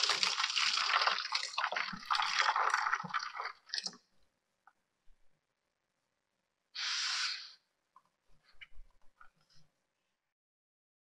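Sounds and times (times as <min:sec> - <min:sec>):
water pouring into metal tray: 0:00.0 - 0:04.0
water splashes and drips: 0:00.0 - 0:04.1.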